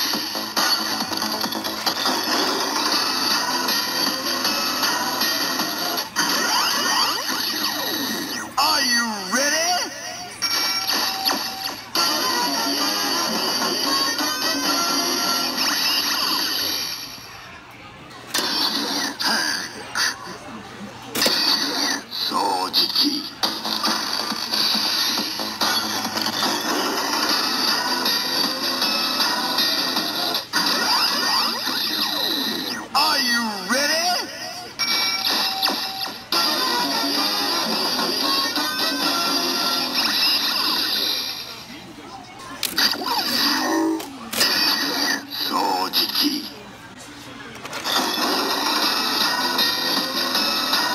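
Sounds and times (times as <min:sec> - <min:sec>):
electronic toy music and effects: 0:00.0 - 0:08.4, 0:09.4 - 0:17.2, 0:21.2 - 0:32.8, 0:33.7 - 0:41.4, 0:47.7 - 0:50.9.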